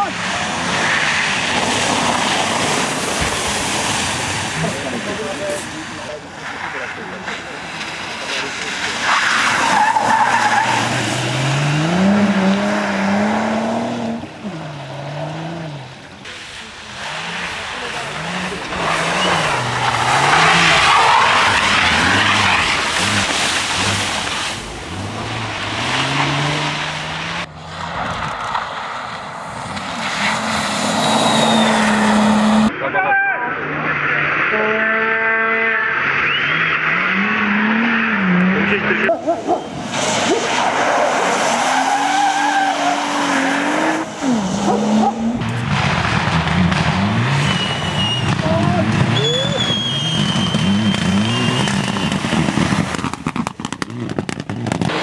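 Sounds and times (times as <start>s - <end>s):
rally car engine revving: 0.0s - 55.0s
tyres skidding on icy tarmac: 0.0s - 55.0s.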